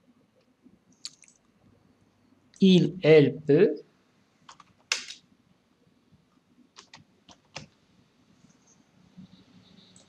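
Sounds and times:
computer keyboard keystrokes: 0:04.5 - 0:05.2, 0:06.8 - 0:07.8.

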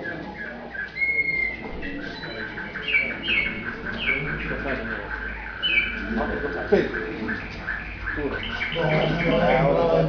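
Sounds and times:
canary singing: 0:00.0 - 0:10.0.

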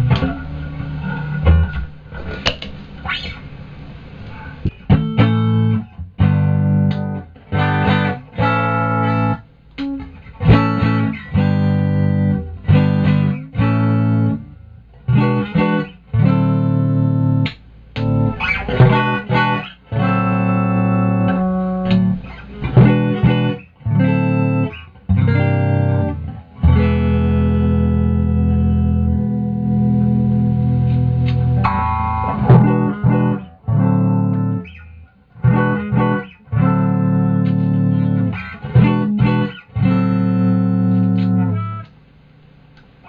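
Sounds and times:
electric guitar through amplifier: 0:00.0 - 0:43.0.

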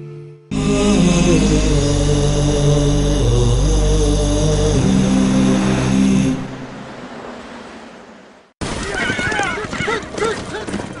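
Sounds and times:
chanted vocal jingle with drone: 0:00.5 - 0:07.2.

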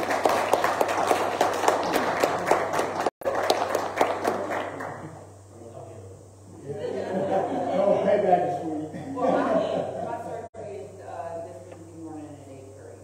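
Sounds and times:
crowd applauding: 0:00.0 - 0:05.2.

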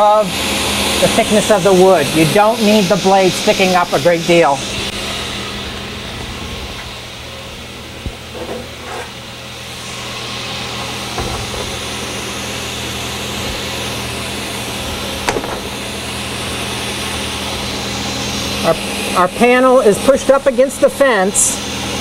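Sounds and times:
table saw motor whirring: 0:00.0 - 0:22.0.

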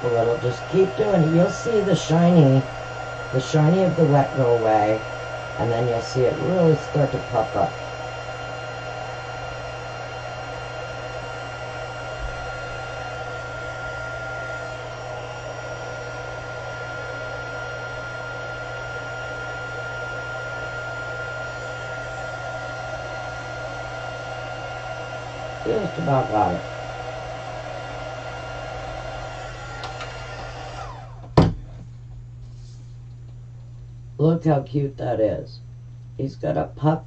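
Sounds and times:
heat tool blowing with whine: 0:00.0 - 0:33.4.

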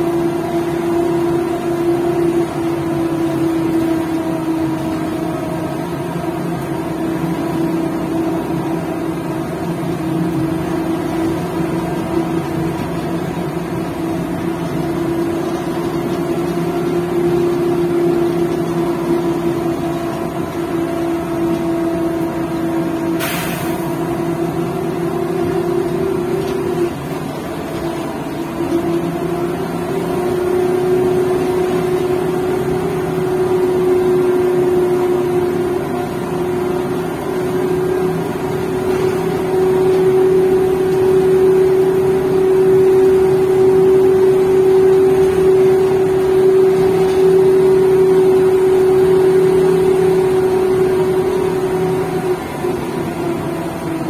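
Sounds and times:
road rumble: 0:00.0 - 0:54.0
trolleybus electric whine: 0:00.0 - 0:54.0.

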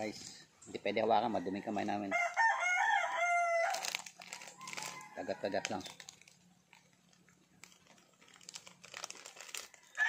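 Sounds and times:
rooster crowing: 0:01.2 - 0:05.9, 0:09.8 - 0:10.0
plastic wrapper rustling: 0:03.3 - 0:10.0.

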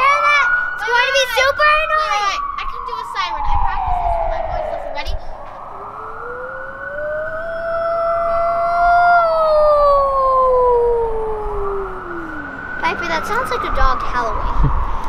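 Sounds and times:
faint emergency vehicle siren: 0:00.0 - 0:15.0
girl imitating a siren: 0:00.0 - 0:15.0.

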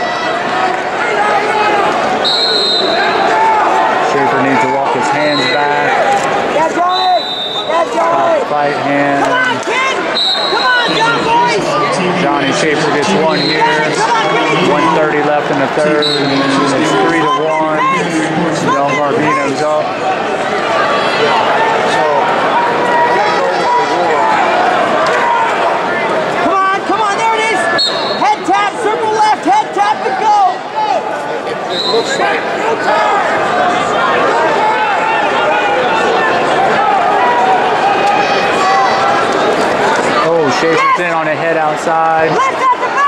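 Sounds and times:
crowd talking and shouting: 0:00.0 - 0:43.0.

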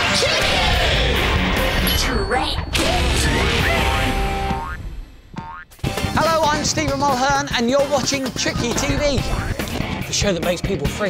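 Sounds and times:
children's tv theme music: 0:00.0 - 0:11.0
cartoon boing glides: 0:04.4 - 0:05.7.

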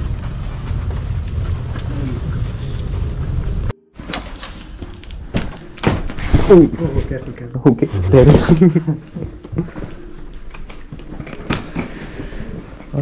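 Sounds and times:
wheeled suitcase rolling on carpet: 0:00.0 - 0:05.1.

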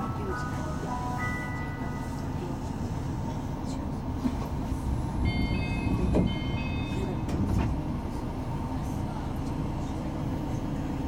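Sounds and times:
low rumble of train equipment: 0:00.0 - 0:11.0.

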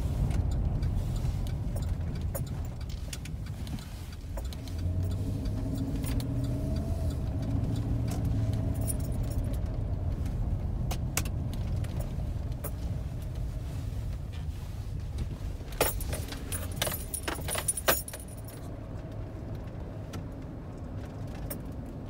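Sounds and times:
car engine and road rumble: 0:00.0 - 0:22.0
light clicks and rattles: 0:00.1 - 0:22.0.

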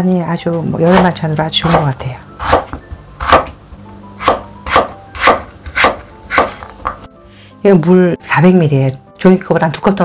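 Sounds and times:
knife striking wooden cutting board: 0:02.4 - 0:03.6, 0:04.2 - 0:07.0.

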